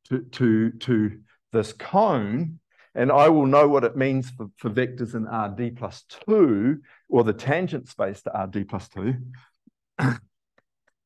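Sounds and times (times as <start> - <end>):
man speaking: 0.0 - 9.4
man clearing throat: 10.0 - 10.4.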